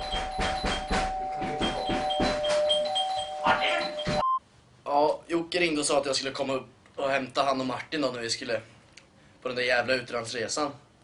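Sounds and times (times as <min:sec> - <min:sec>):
two-tone doorbell ringing: 0:00.0 - 0:04.3.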